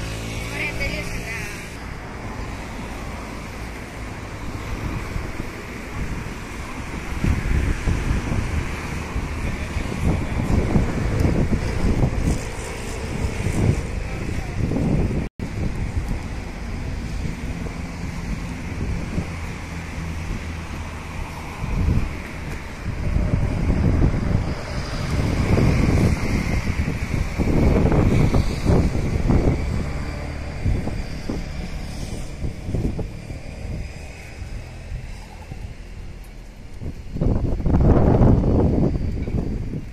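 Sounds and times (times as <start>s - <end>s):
steady outdoor hiss: 0.0s - 39.9s
wind buffeting microphone: 0.0s - 39.9s.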